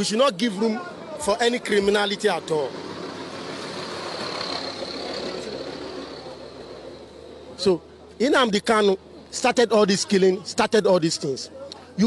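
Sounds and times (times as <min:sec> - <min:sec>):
vehicle passing by: 0:01.6 - 0:07.8.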